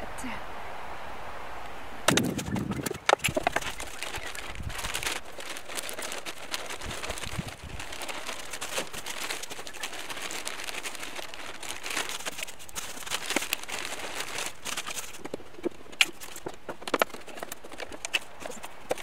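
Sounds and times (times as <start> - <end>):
plastic bag crinkling: 2.1 - 19.0.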